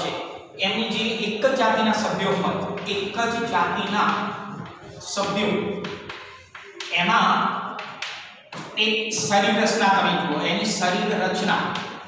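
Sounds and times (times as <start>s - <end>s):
man talking: 0.0s - 5.9s, 6.8s - 7.6s, 8.6s - 12.0s
chalk tapping and writing on blackboard: 1.5s - 9.7s, 11.6s - 12.0s.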